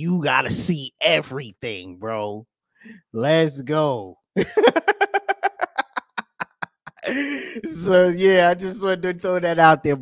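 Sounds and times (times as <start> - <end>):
man laughing: 4.4 - 8.5.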